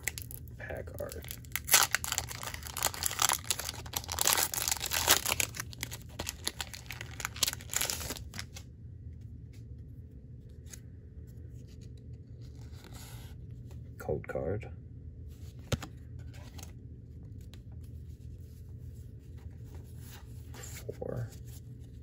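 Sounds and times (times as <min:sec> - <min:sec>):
foil wrapper tearing and crinkling: 0:00.0 - 0:00.4, 0:01.0 - 0:08.6.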